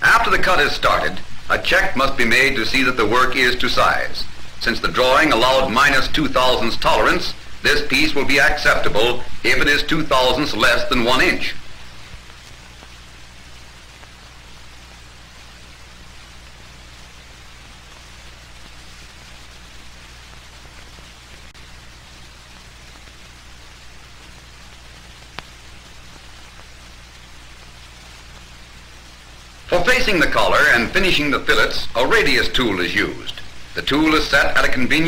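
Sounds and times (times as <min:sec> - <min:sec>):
film soundtrack hiss and hum: 0:00.0 - 0:35.0.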